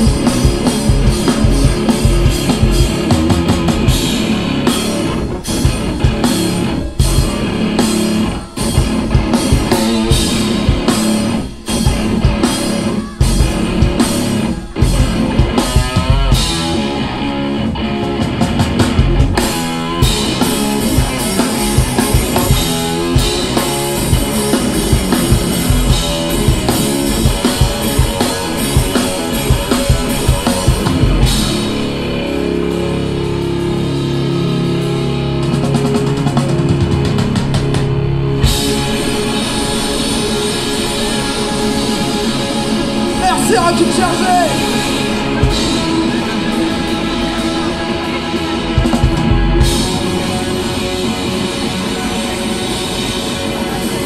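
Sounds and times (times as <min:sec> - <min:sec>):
distorted electric guitar: 0:00.0 - 0:54.0
drum kit pounding: 0:00.0 - 0:54.0.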